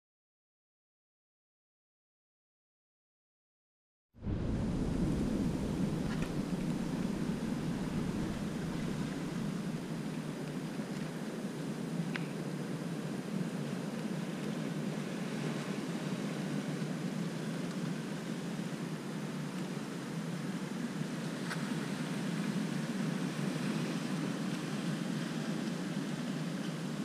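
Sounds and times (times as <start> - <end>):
shore rushing noise: 4.2 - 12.0.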